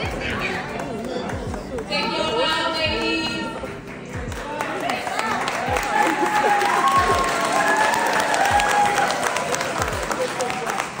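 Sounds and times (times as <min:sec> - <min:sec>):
crowd talking and calling out: 0:00.0 - 0:11.0
audience applauding: 0:03.8 - 0:11.0.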